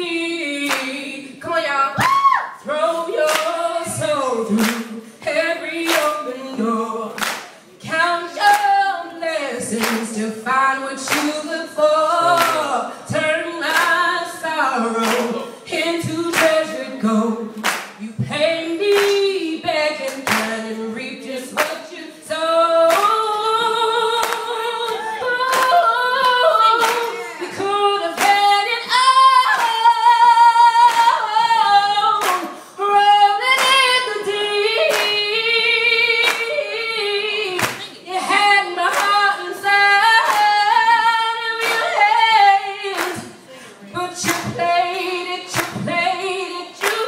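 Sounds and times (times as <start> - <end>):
woman singing a cappella: 0.0 - 47.0
crowd clapping on the beat: 0.6 - 1.0, 3.2 - 4.9, 5.8 - 6.3, 7.2 - 8.8, 9.7 - 10.1, 11.1 - 11.4, 12.2 - 12.8, 13.6 - 14.0, 15.0 - 16.8, 17.5 - 20.6, 21.6 - 21.9, 22.8 - 23.5, 24.1 - 28.6, 29.4 - 30.0, 30.7 - 31.3, 32.1 - 32.6, 33.5 - 35.3, 36.1 - 36.6, 37.4 - 43.4, 44.1 - 47.0.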